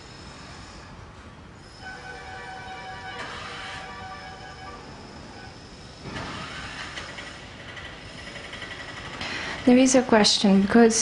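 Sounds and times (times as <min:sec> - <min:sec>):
room noise and hiss: 0:00.0 - 0:11.0.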